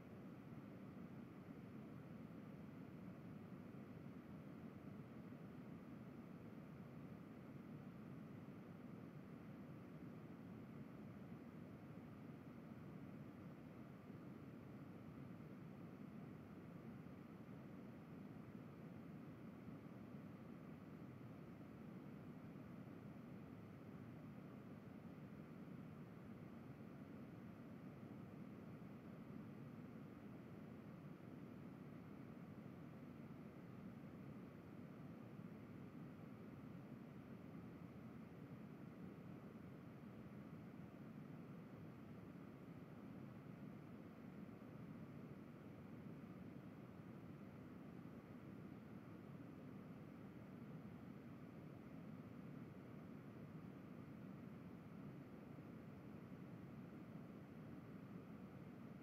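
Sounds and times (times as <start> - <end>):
faint background hiss: 0.0 - 59.0.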